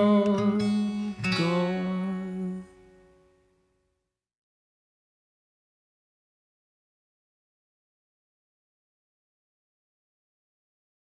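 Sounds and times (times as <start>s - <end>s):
acoustic guitar chord ringing: 0.0s - 3.8s.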